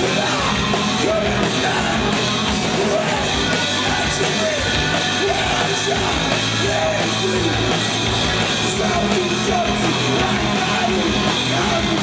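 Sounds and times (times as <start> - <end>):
electric guitar: 0.0 - 12.0
live rock band: 0.0 - 12.0
singer shouting vocals: 0.0 - 12.0.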